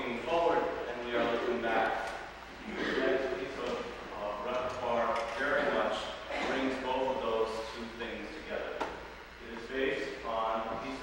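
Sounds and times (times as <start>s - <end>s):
man speaking in a large church: 0.0s - 11.0s.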